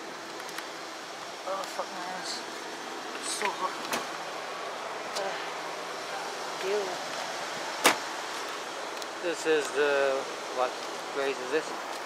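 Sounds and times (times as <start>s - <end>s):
outdoor street noise: 0.0s - 12.0s.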